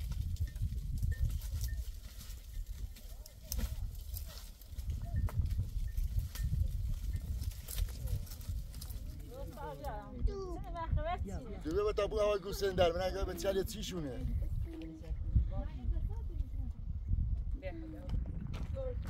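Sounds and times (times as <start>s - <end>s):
hooves clicking on rocks: 0.0s - 10.8s, 17.4s - 19.0s
steady low rumble: 2.6s - 19.0s.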